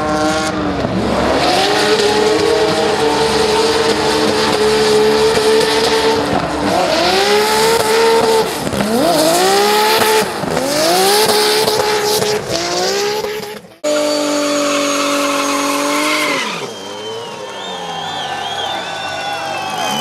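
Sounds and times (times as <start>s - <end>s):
car engine revving: 0.0s - 20.0s.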